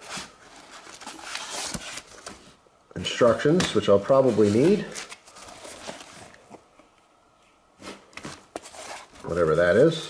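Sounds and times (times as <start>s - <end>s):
plastic packaging rustling: 0.0s - 2.6s, 3.2s - 6.7s.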